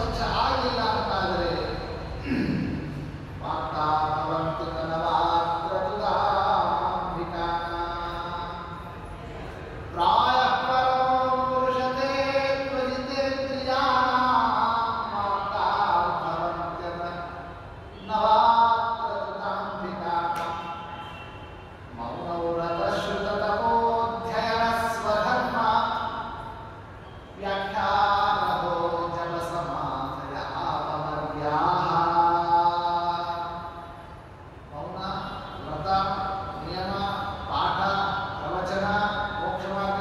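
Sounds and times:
man chanting: 0.0s - 8.9s, 9.9s - 20.7s, 22.0s - 26.6s, 27.4s - 33.9s, 34.7s - 40.0s.

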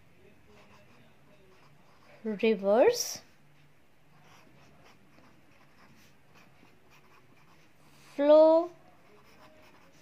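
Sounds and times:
pen scratching on paper: 0.5s - 2.2s, 4.1s - 8.3s, 9.0s - 10.0s.

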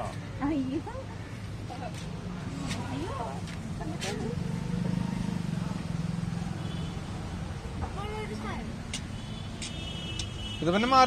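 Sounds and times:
vehicle engine humming: 0.0s - 11.0s
voices: 0.0s - 11.0s.

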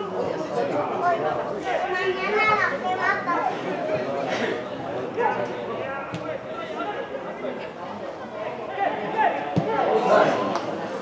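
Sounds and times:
background of voices: 0.0s - 11.0s
people shouting and calling out: 0.0s - 11.0s.

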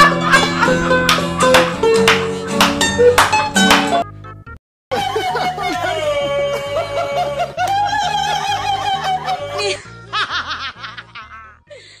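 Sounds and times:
high-pitched laughter: 0.0s - 1.0s, 4.9s - 11.6s.

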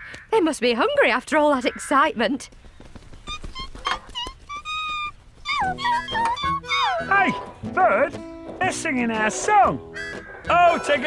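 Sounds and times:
cartoon birds whistling: 3.2s - 7.6s, 9.9s - 11.0s
light music: 5.5s - 11.0s.

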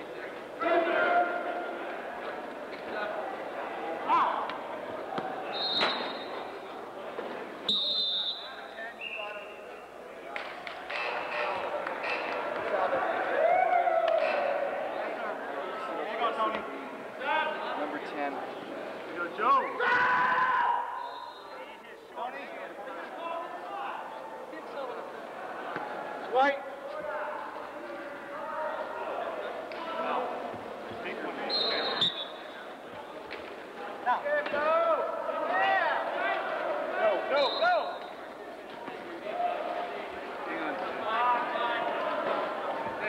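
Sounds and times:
players and spectators voices: 0.0s - 43.0s.

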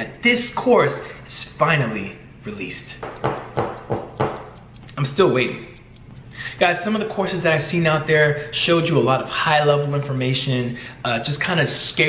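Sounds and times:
clock ticking: 3.0s - 6.4s.

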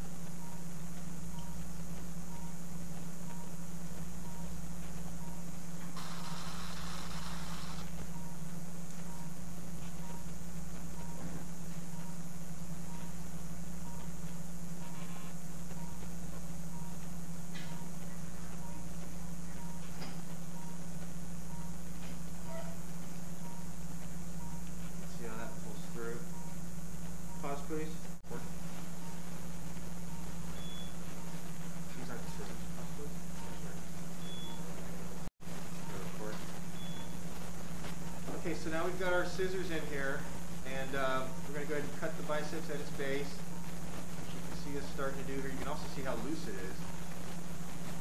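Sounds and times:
low equipment hum: 0.0s - 48.0s
faint short beeps: 21.5s - 21.8s, 23.4s - 23.8s, 30.1s - 31.4s, 32.0s - 34.8s, 35.8s - 37.2s.

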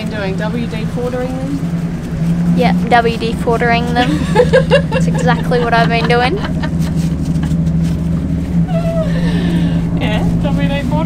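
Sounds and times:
low machine hum: 0.0s - 11.0s
paper towel rustling: 1.0s - 8.8s.

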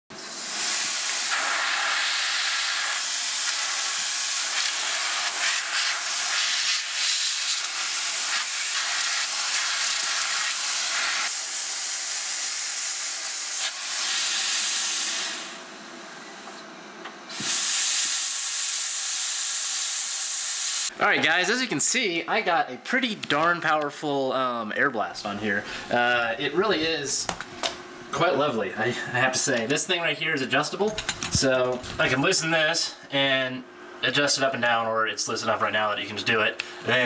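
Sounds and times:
compressed air hissing: 0.1s - 15.7s, 17.3s - 20.9s.

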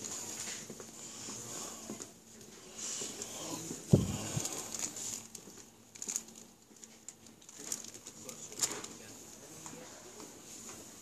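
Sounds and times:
clicks and rustles of handling: 4.0s - 11.0s.

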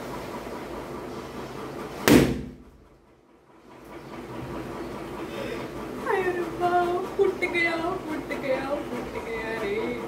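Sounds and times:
balloon bursting with loud bang: 2.0s - 2.6s.

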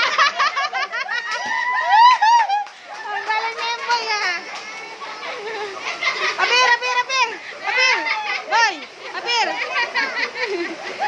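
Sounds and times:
children calling out: 0.2s - 11.0s.

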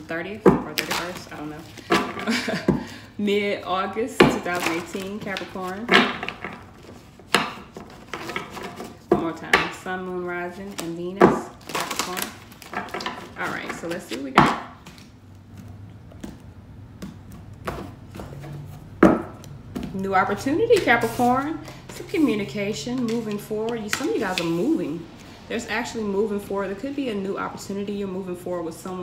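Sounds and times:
cards rustling: 4.3s - 9.1s, 10.2s - 18.8s, 20.7s - 25.3s
cards being shuffled: 14.8s - 18.6s.

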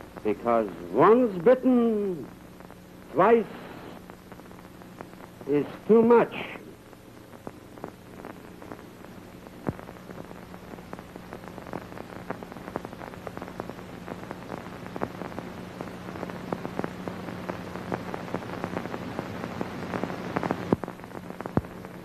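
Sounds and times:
film soundtrack crackle and pops: 0.0s - 22.0s
steady hiss and low hum: 0.0s - 22.0s.

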